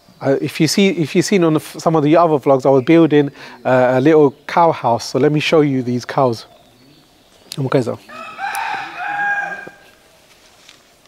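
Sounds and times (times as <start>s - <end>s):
rooster crowing: 8.0s - 10.2s.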